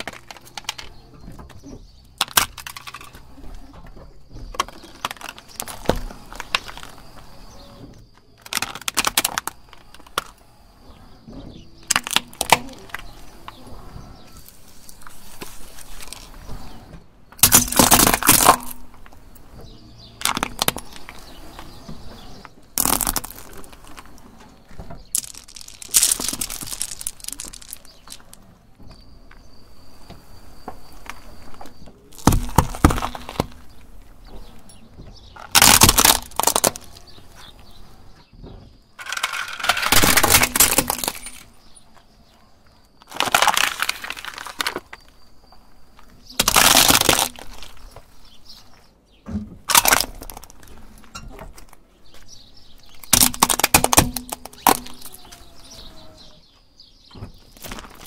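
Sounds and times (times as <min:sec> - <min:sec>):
plastic toy cracking: 0:00.0 - 0:01.0, 0:02.2 - 0:03.2, 0:04.5 - 0:06.9, 0:08.4 - 0:10.4, 0:11.9 - 0:13.2, 0:17.4 - 0:18.9, 0:20.2 - 0:21.1, 0:22.8 - 0:24.1, 0:25.1 - 0:28.4, 0:35.4 - 0:37.2, 0:39.0 - 0:41.5, 0:43.0 - 0:45.1, 0:46.3 - 0:47.8, 0:49.7 - 0:50.7, 0:52.9 - 0:55.3
birds chirping: 0:00.0 - 0:58.0.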